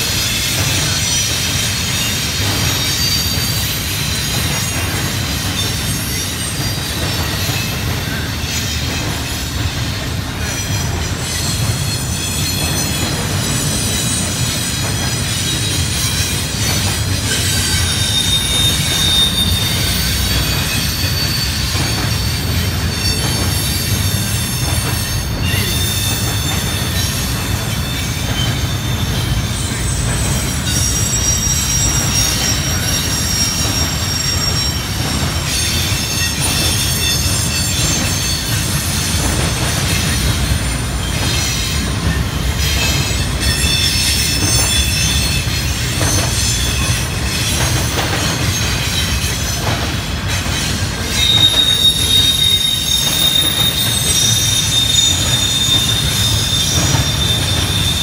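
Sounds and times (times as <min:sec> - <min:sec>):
freight train rumbling past: 0:00.0 - 0:58.0
high-pitched wheel squeal: 0:10.6 - 0:39.3, 0:50.6 - 0:58.0.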